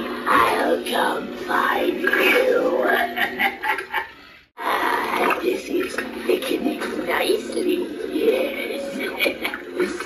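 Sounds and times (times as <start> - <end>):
spooky recorded voice from speaker: 0.0 - 10.0.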